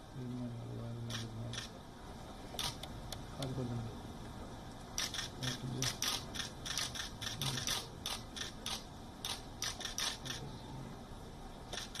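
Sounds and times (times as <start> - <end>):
camera shutters clicking: 2.6 - 2.9, 5.0 - 10.4, 11.7 - 12.0.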